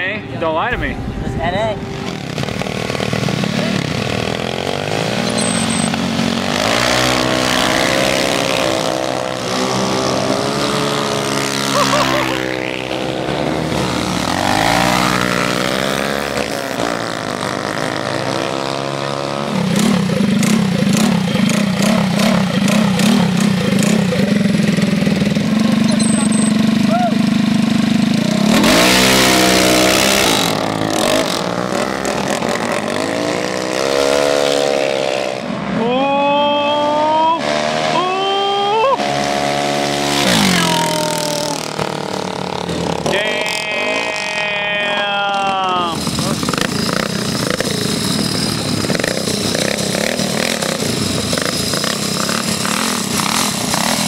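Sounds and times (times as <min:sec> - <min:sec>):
burst of rushing noise: 0:00.7 - 0:04.0
small engines revving: 0:02.0 - 0:54.0.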